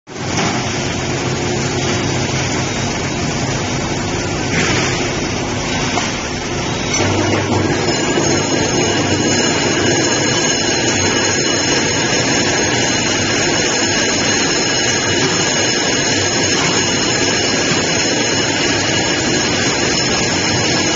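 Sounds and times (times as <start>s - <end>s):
high-pitched machine tones: 1.2s - 20.9s.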